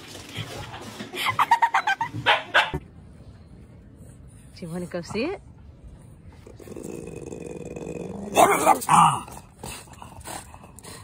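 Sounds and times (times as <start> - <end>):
dog barking loudly: 2.2 - 2.8
dog growling: 6.3 - 11.0.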